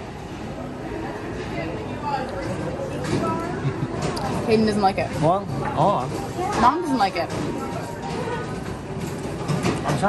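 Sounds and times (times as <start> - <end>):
murmured voices of diners: 0.0 - 10.0.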